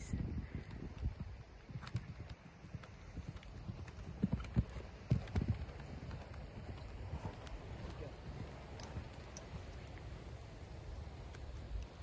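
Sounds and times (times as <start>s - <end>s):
horse hooves cantering on dirt: 0.5s - 12.0s.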